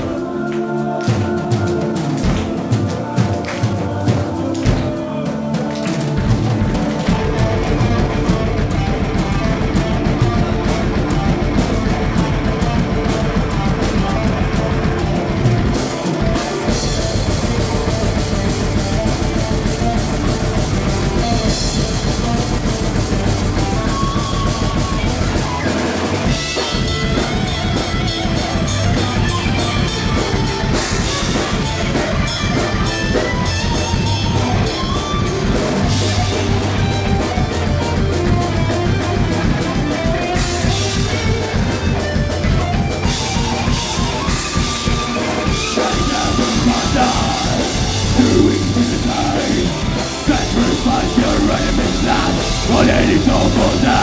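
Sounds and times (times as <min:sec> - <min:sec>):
metal band playing: 0:00.0 - 0:54.0.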